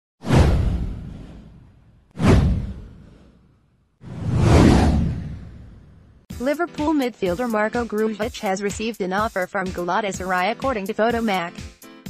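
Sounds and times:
swoosh with deep boom: 0.2s - 6.3s.

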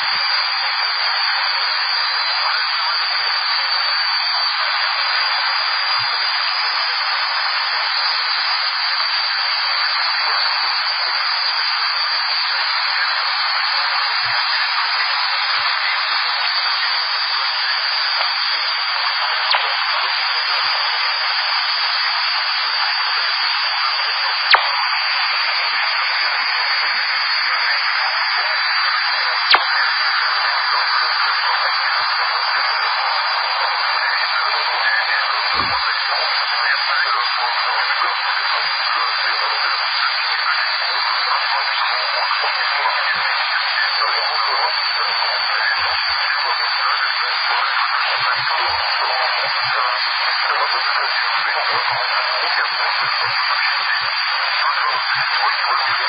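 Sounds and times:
radio static hiss: 0.0s - 56.0s
sharp clicks: 19.5s - 19.8s, 24.5s - 24.8s, 29.5s - 29.8s.

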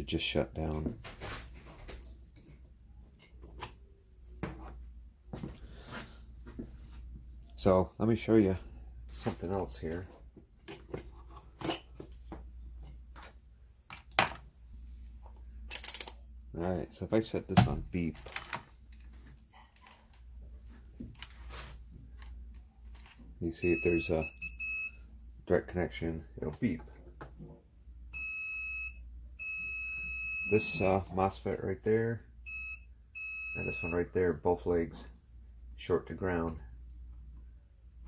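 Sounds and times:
low steady hum: 0.0s - 38.0s
clicks and knocks of handling items: 17.6s - 20.3s
multimeter beeping: 23.6s - 25.0s, 28.2s - 31.0s, 32.5s - 34.1s.

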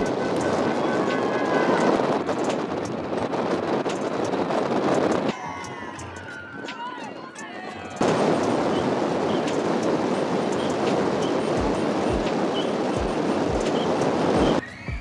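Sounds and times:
wind noise on microphone: 0.0s - 15.0s
slow background music: 5.2s - 15.0s.

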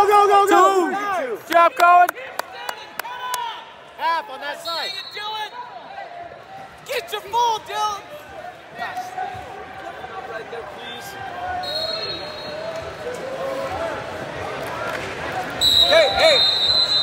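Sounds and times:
gym crowd: 0.0s - 17.0s
whistle blowing: 4.6s - 5.6s, 11.6s - 12.7s, 15.6s - 17.0s.

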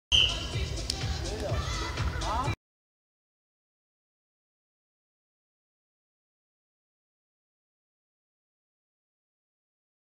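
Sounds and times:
referee's whistle blast: 0.1s - 0.5s.

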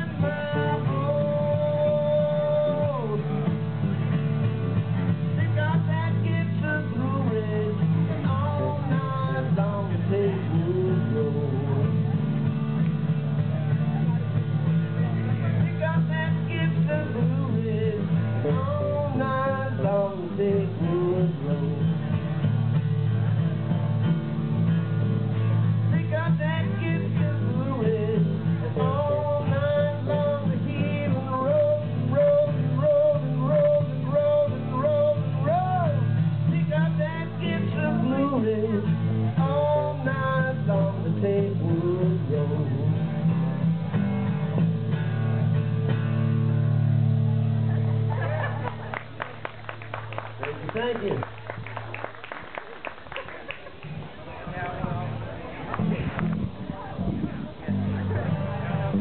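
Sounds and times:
strummed acoustic guitars: 0.0s - 51.9s, 53.7s - 59.0s.

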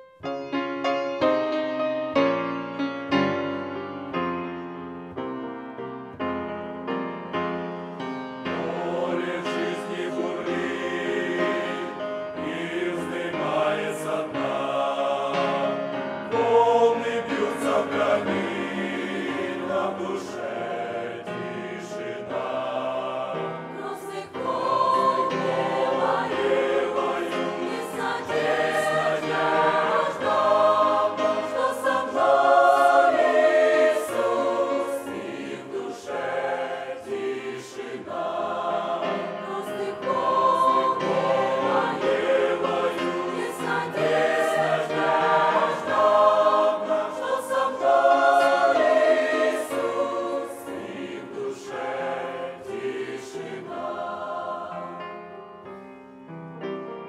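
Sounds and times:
choir singing a hymn: 7.4s - 56.4s.

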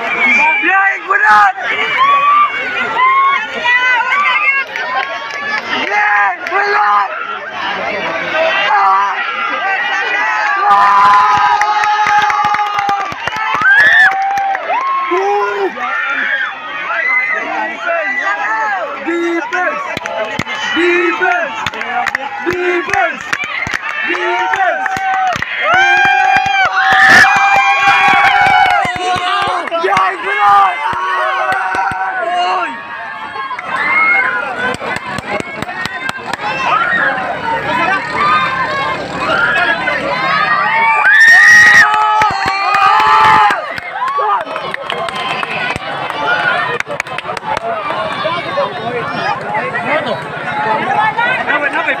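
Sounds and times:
crowd shouting and cheering: 0.0s - 52.0s.

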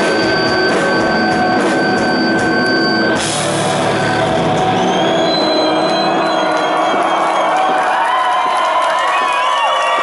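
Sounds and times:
electric guitar feedback: 0.0s - 7.5s.

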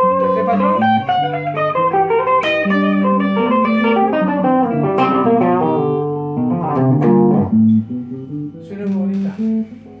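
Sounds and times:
electric guitar phrase: 0.0s - 10.0s.

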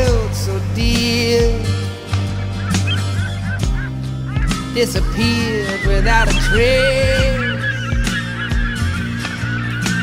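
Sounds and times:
background music: 0.0s - 10.0s
gulls calling: 0.0s - 10.0s.

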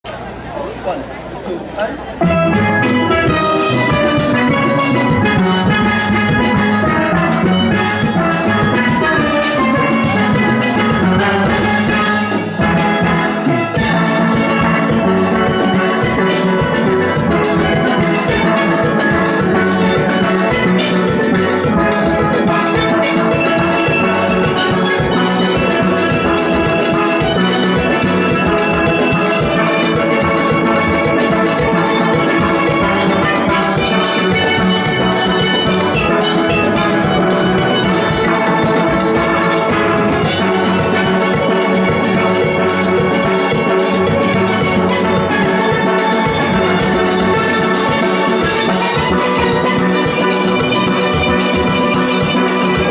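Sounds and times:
percussion: 0.9s - 52.9s
steel pan orchestra playing: 2.1s - 52.9s.

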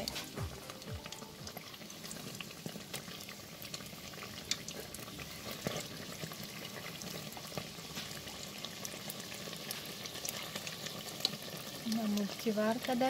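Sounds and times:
food deep-frying in oil: 0.0s - 13.0s.

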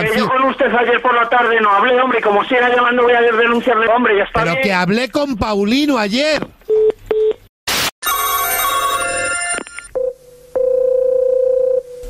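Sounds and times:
telephone ringing: 8.0s - 11.8s
steady phone line tone: 8.0s - 12.0s.

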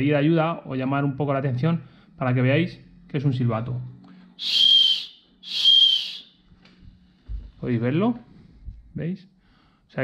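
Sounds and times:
high-pitched whistle blasts: 4.4s - 6.4s.

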